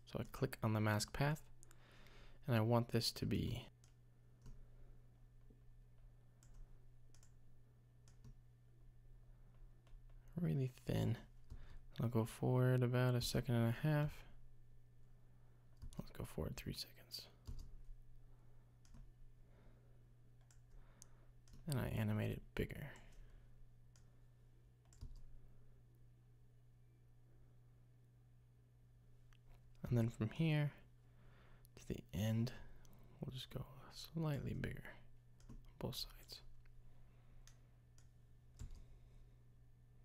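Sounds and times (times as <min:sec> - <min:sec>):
low electrical hum: 0:00.0 - 0:40.0
computer mouse clicks: 0:06.4 - 0:07.4, 0:08.0 - 0:08.4.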